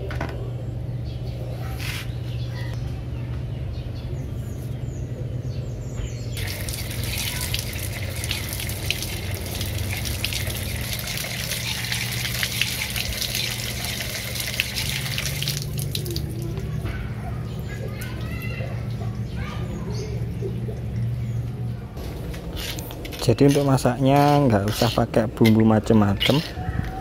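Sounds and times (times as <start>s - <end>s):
steady low hum: 0.0s - 27.0s
running water splashing: 6.4s - 16.8s.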